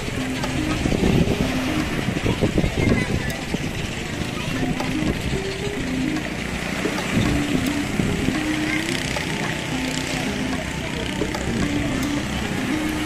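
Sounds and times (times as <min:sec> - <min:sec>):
simple melody: 0:00.0 - 0:13.0
surf: 0:00.0 - 0:13.0
voices in background: 0:00.0 - 0:13.0
wind: 0:00.0 - 0:13.0.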